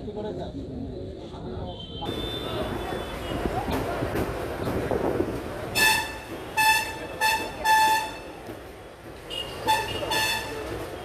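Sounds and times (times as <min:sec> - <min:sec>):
vehicle horn honking: 0:01.7 - 0:03.4, 0:05.8 - 0:08.4, 0:09.3 - 0:11.0.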